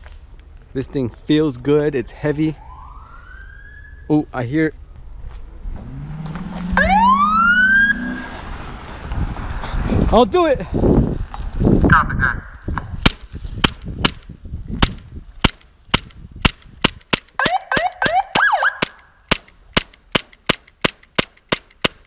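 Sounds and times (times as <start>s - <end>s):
airsoft pistol shots: 13.0s - 22.0s.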